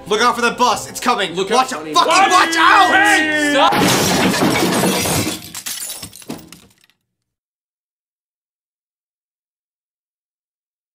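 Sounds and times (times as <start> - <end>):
shattering glass clattering: 3.7 - 6.9.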